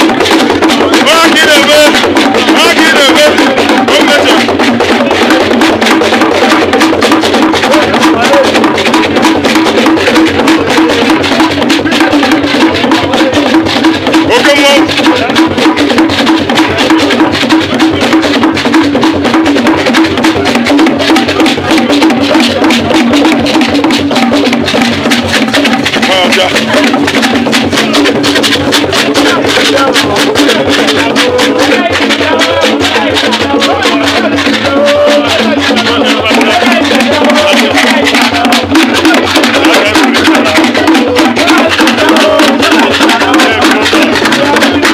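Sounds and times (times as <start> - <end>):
hand drums playing fast rhythm: 0.0 - 44.9
voices calling out: 0.0 - 44.9.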